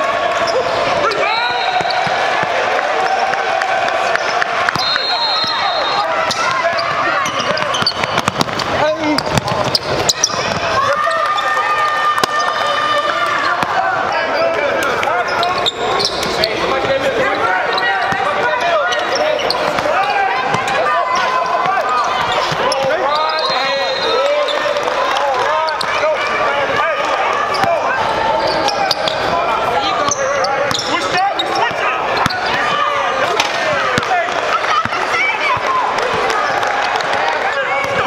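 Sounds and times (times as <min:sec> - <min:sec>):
voices echoing in hall: 0:00.0 - 0:38.0
sneakers squeaking on court: 0:00.4 - 0:02.6, 0:04.7 - 0:10.8, 0:13.3 - 0:24.8, 0:27.4 - 0:33.0
basketball bouncing: 0:06.3 - 0:10.8.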